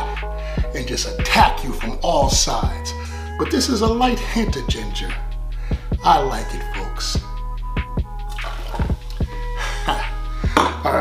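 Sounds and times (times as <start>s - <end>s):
hip-hop beat: 0.0s - 11.0s
soda pouring into glass: 8.3s - 9.2s.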